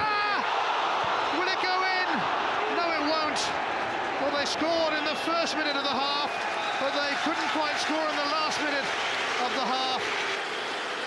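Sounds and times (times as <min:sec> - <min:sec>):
people shouting: 0:00.0 - 0:06.1
stadium crowd reacting: 0:00.0 - 0:11.0.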